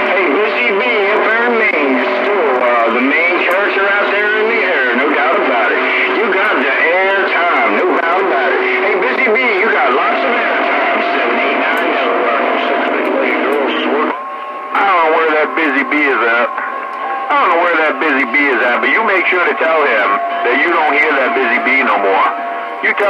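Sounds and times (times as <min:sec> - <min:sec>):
garbled voices over radio speaker: 0:00.0 - 0:23.0
steady whistle tones: 0:14.0 - 0:23.0.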